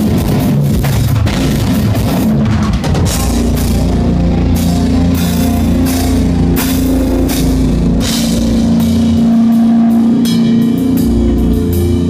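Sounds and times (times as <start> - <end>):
bass guitar low notes: 0.0 - 12.0
drum kit: 0.0 - 12.0
electric guitar: 0.0 - 12.0
cymbal crashes: 3.0 - 12.0.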